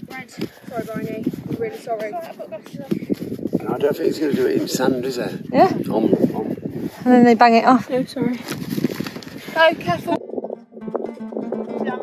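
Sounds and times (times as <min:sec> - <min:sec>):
people talking: 0:00.1 - 0:03.1, 0:09.6 - 0:10.2, 0:11.7 - 0:12.0.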